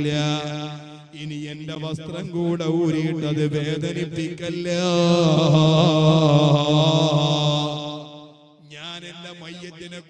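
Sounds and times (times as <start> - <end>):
man chanting a long note: 0.0 - 10.0.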